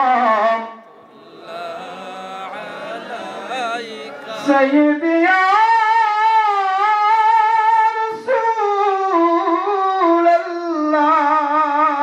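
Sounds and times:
man singing a chant into a microphone: 0.0 - 12.0.

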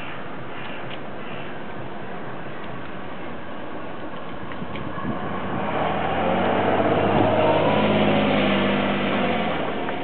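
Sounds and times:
car driving past: 4.9 - 10.0.

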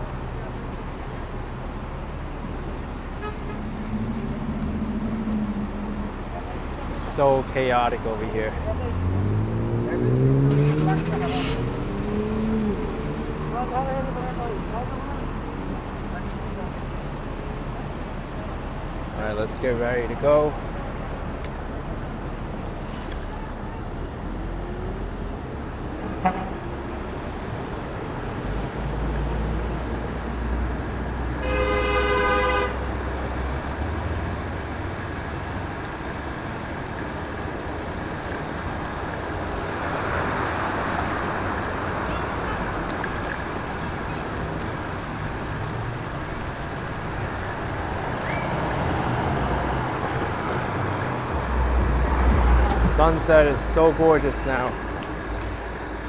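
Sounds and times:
street traffic: 0.0 - 56.0
vehicle horn honk: 3.2 - 3.7, 31.4 - 32.9.

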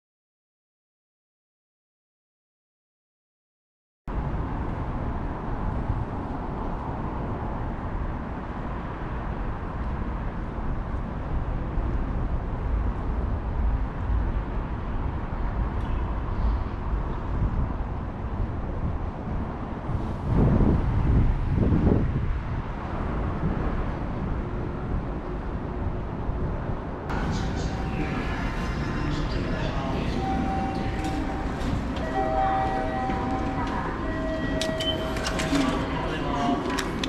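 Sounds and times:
low rumble of road traffic: 4.1 - 37.0.

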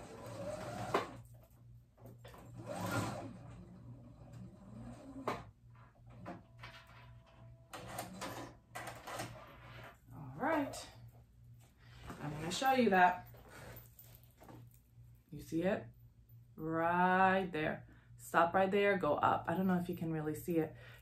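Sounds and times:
sewing machine stitching: 0.0 - 1.2, 2.2 - 5.4.

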